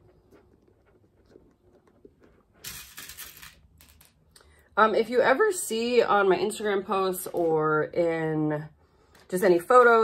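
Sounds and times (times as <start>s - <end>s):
rustling and scraping: 0.0s - 4.2s.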